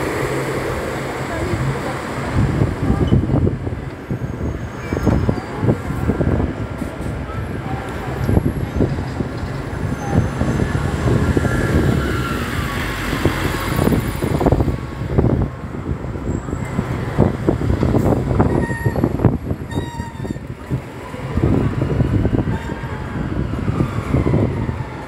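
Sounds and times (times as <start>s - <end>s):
diesel bus engine rumble: 0.0s - 25.0s
passing vehicles: 0.0s - 25.0s.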